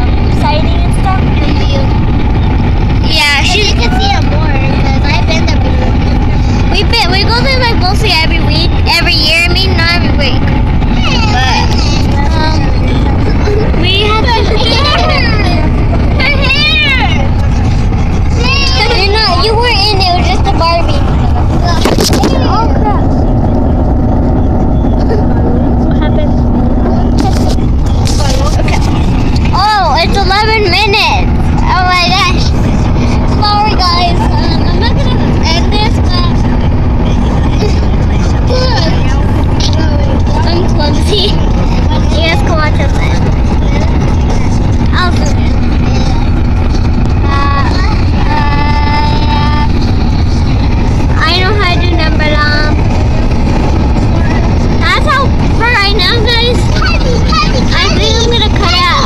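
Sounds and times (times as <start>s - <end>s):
road and wind rumble in car: 0.0s - 59.0s
high-pitched voices calling out: 8.7s - 23.4s.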